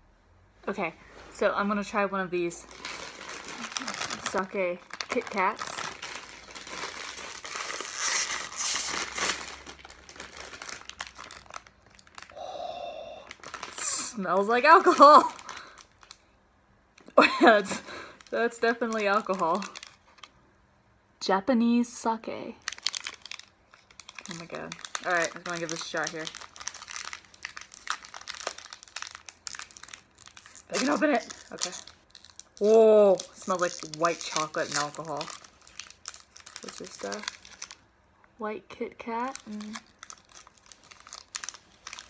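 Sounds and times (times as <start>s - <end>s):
plastic wrapper crinkling: 2.6s - 12.5s, 13.2s - 16.3s, 17.0s - 20.4s, 22.5s - 38.0s, 39.0s - 42.0s.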